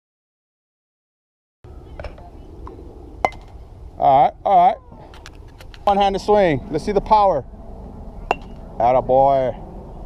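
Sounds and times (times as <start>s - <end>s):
outdoor background noise: 1.7s - 10.0s
bat striking baseball: 3.2s - 3.6s, 8.3s - 8.6s.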